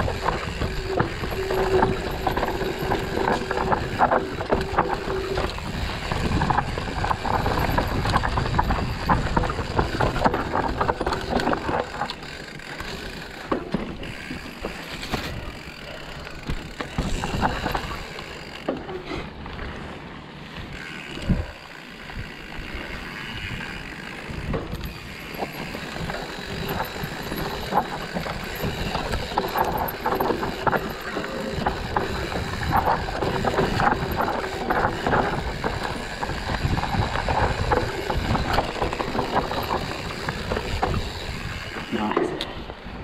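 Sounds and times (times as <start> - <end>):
bike chain and frame rattling: 0.0 - 43.0
bike tyres on dirt: 0.0 - 43.0.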